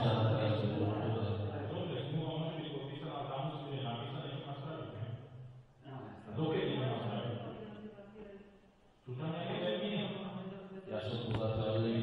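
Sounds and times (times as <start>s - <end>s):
man talking: 0.0s - 5.3s, 6.0s - 7.5s, 9.0s - 12.0s.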